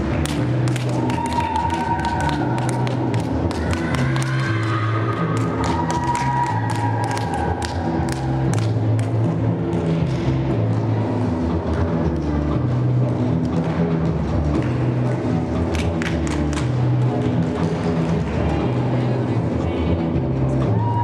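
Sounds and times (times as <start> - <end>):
music with stepping bass line: 0.0 - 20.8.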